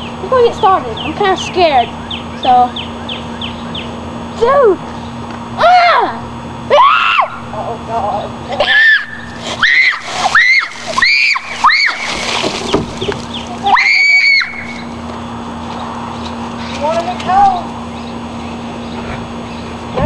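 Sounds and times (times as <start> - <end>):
boy screaming: 5.6 - 7.4, 8.6 - 12.1, 13.6 - 14.8
water splashing: 9.3 - 13.8.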